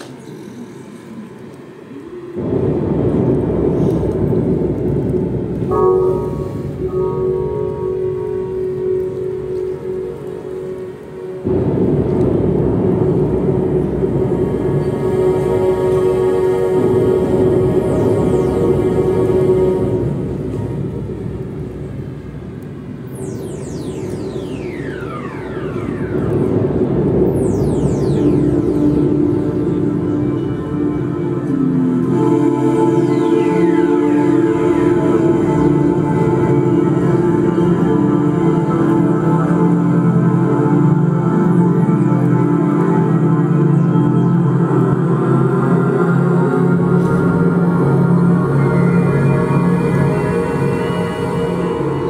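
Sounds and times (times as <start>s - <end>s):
low rumbling noise swell: 0.0s - 52.0s
electronic synthesizer music: 2.4s - 52.0s
sustained synth chord: 2.4s - 52.0s.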